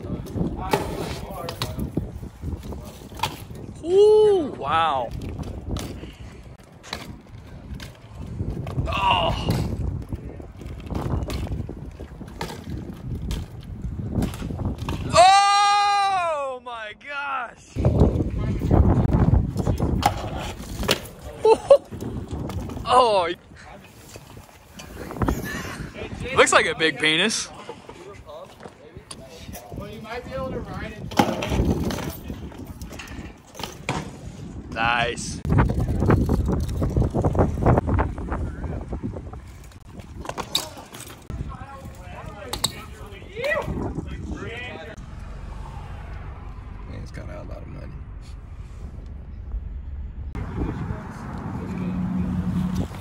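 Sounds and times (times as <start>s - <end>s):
bike rolling on concrete: 0.0s - 15.2s, 17.6s - 53.0s
wind on microphone: 0.0s - 15.2s, 17.7s - 23.6s, 24.2s - 26.4s, 29.1s - 40.5s, 41.2s - 53.0s
clicks and knocks from bike: 9.6s - 15.1s.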